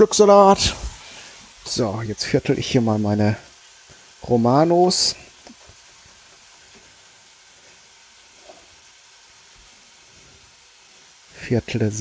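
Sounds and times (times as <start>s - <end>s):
chicken sizzling in a pan: 0.0s - 12.0s.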